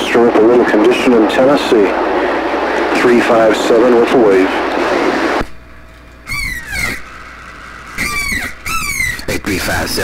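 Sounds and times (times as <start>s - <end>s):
low radio hiss: 0.0s - 6.2s
radio speaker squeals: 6.2s - 10.0s.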